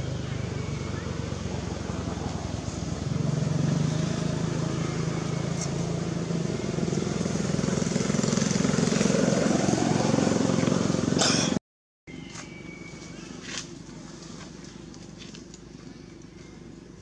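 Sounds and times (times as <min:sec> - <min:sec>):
vehicle engine running: 0:00.0 - 0:11.6.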